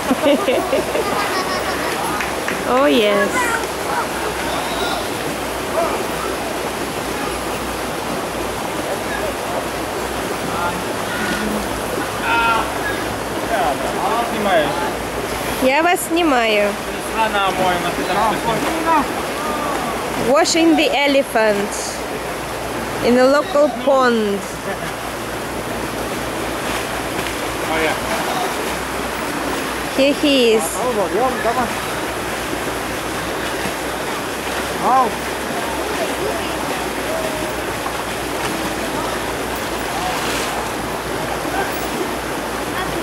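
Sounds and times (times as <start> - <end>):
water splashing and sloshing: 0.0 - 43.0.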